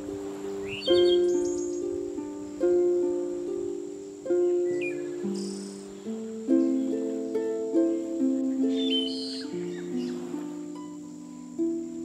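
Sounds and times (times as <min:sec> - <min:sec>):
soft harp music: 0:00.0 - 0:12.0
bird chirp: 0:00.6 - 0:02.0, 0:04.5 - 0:11.5
high bird trill: 0:00.6 - 0:02.0, 0:04.5 - 0:10.4.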